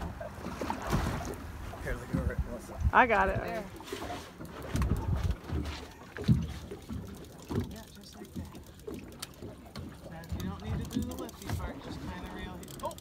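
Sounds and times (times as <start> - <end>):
wind buffeting microphone: 0.0 - 3.8, 4.6 - 5.7
boat engine rumbling: 0.0 - 13.0.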